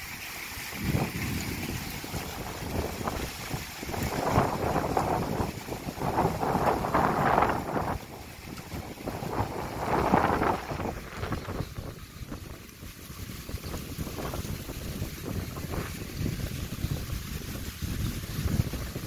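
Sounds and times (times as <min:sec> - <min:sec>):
storm wind gusting through trees: 0:00.0 - 0:19.0
wind buffeting microphone: 0:00.0 - 0:19.0.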